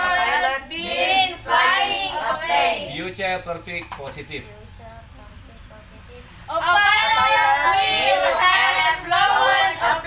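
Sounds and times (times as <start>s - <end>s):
child reciting in sing-song voice: 0.0s - 2.9s, 4.4s - 10.0s.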